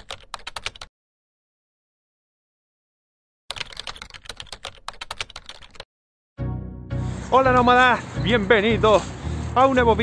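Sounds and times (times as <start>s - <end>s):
keyboard typing clicks: 3.5s - 5.8s
music: 6.4s - 10.0s.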